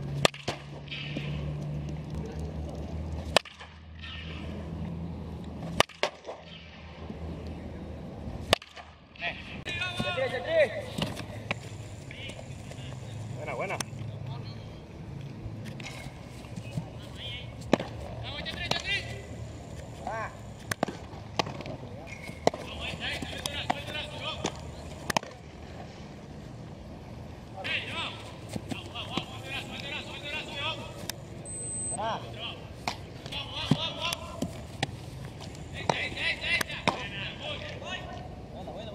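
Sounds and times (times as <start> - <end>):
distant voices calling: 9.1 - 38.8.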